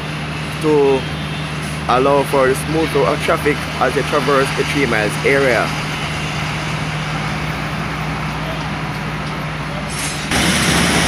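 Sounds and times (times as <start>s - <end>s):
diesel engine idling: 0.0s - 11.0s
street traffic: 0.0s - 11.0s.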